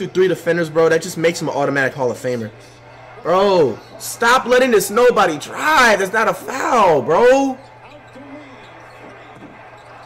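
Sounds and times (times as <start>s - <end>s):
arena crowd noise: 0.0s - 10.0s
commentator talking: 3.2s - 8.6s
basketball bouncing on court: 7.6s - 10.0s.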